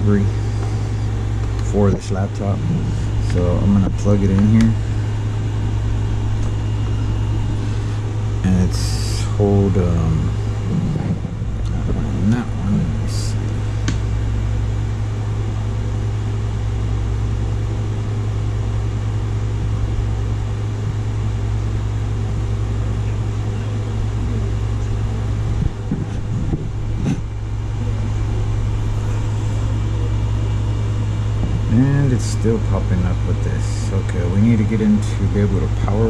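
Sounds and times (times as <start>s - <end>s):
low machine hum: 0.0s - 36.0s.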